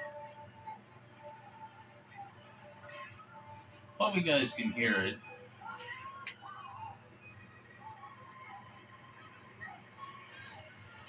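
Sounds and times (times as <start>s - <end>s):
cartoon music from television: 0.0s - 11.0s.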